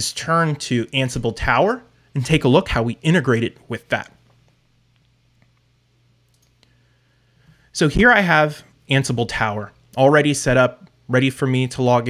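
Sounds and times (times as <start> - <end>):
faint steady hum: 0.0 - 12.0
faint clicks: 6.3 - 6.8.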